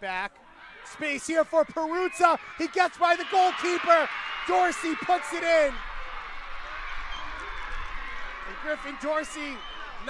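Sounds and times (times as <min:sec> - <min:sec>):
distant crowd noise: 0:00.4 - 0:10.0.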